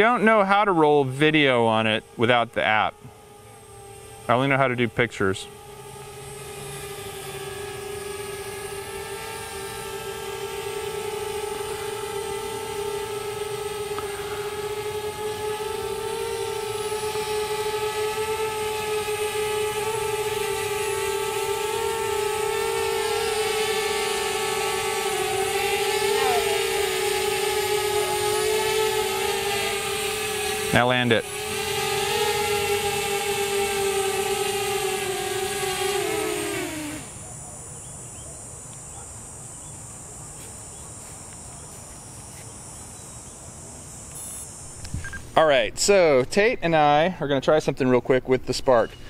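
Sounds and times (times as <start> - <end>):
drone propellers humming: 0.0 - 46.1.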